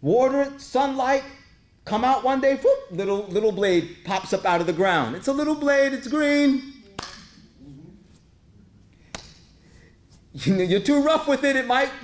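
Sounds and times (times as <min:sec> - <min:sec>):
sharp hand clap: 0:09.0 - 0:09.5.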